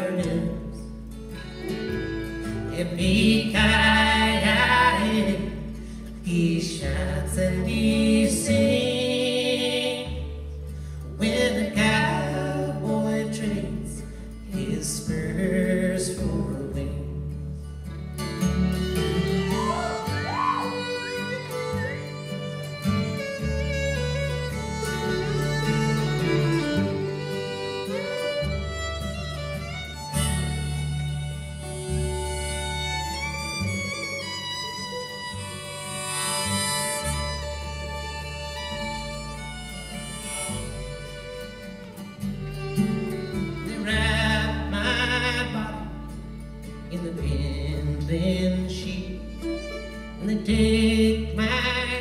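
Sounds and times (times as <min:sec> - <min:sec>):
acoustic guitar: 0:00.0 - 0:52.0
bowed fiddle melody: 0:00.0 - 0:52.0
mandolin: 0:00.0 - 0:52.0
upright bass: 0:00.0 - 0:52.0.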